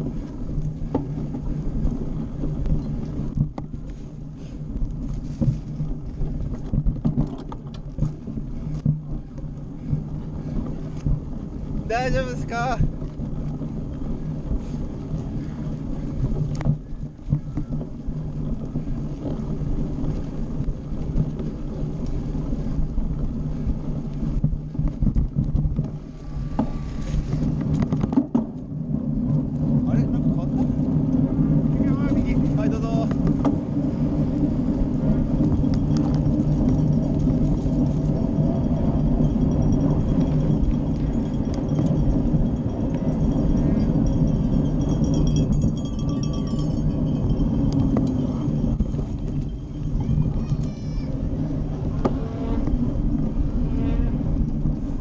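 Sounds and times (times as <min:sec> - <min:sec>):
bike rattling over rough ground: 0:00.0 - 0:55.0
wind on microphone: 0:00.0 - 0:55.0.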